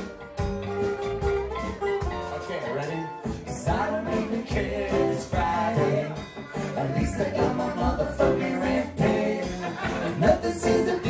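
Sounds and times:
acoustic guitar: 0:00.0 - 0:11.0
drum kit: 0:00.0 - 0:11.0
keyboard: 0:00.0 - 0:11.0
upright bass: 0:00.0 - 0:11.0
person singing: 0:03.5 - 0:11.0.

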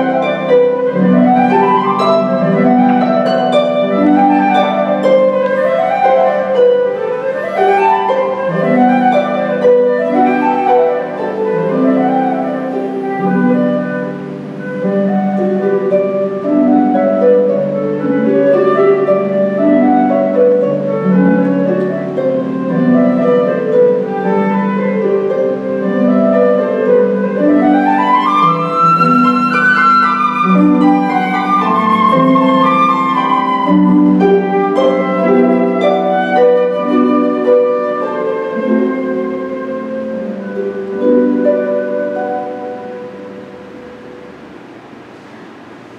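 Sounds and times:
flute melody: 0:00.0 - 0:44.6
harp arpeggios: 0:00.0 - 0:45.9.

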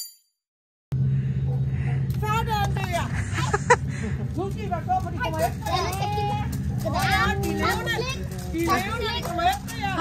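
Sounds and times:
steady low hum: 0:00.9 - 0:09.1
children chattering and calling: 0:04.4 - 0:10.0.

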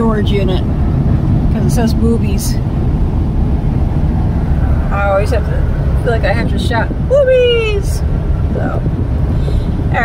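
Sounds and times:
van interior road rumble: 0:00.0 - 0:10.0.

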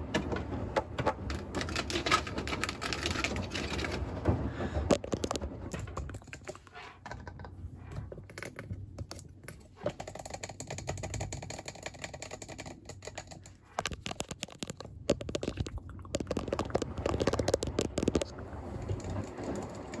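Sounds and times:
washing machine hum: 0:00.0 - 0:20.0
fingertips tapping on microphone: 0:09.9 - 0:19.9.

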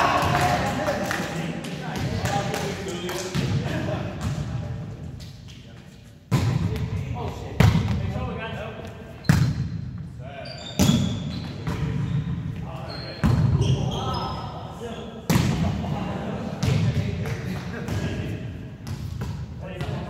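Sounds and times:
volleyball hits echoing in gymnasium: 0:00.0 - 0:01.0, 0:01.8 - 0:05.4, 0:06.3 - 0:08.2, 0:08.8 - 0:10.1, 0:10.7 - 0:12.5, 0:13.2 - 0:13.8, 0:15.2 - 0:20.0
players' voices: 0:00.0 - 0:09.3, 0:10.2 - 0:20.0.

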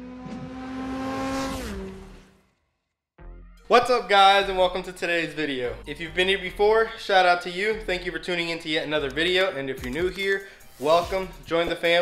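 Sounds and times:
car engine: 0:00.0 - 0:02.6.

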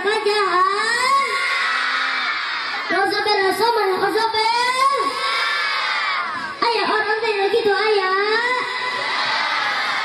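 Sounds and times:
children shouting together: 0:01.0 - 0:03.0, 0:04.9 - 0:06.6.

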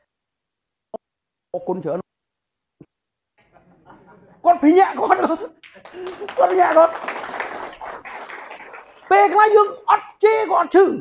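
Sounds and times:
audience applause: 0:04.6 - 0:09.6.

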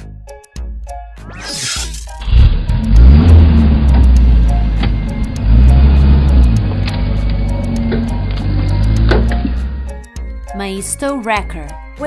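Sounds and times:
background music with ticking beat: 0:00.0 - 0:12.0.

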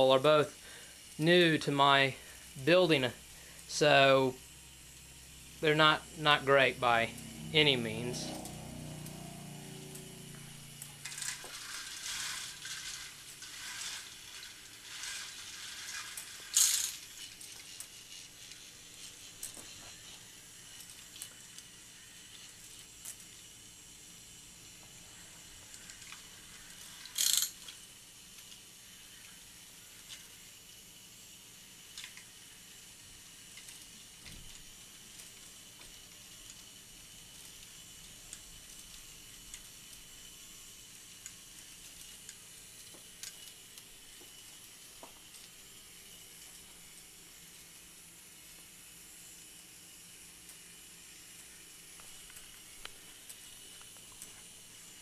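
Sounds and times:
faint scattered ticks: 0:08.3 - 0:23.8
toy roller coaster rattling on track: 0:11.0 - 0:24.0, 0:25.6 - 0:45.5.

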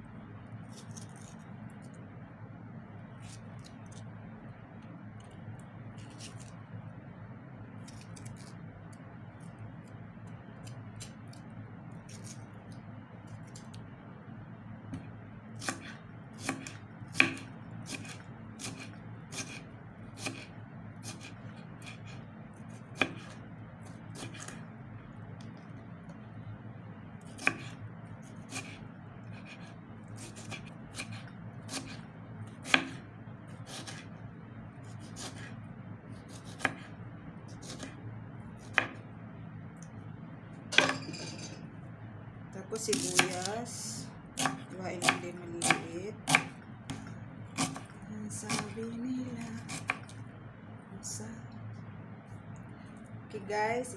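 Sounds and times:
low background noise: 0:00.0 - 0:53.9.

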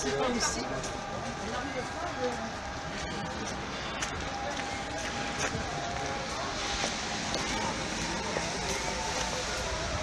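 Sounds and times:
footsteps on slushy pavement: 0:00.0 - 0:10.0
indistinct voices: 0:00.0 - 0:10.0
street hum: 0:00.0 - 0:10.0.

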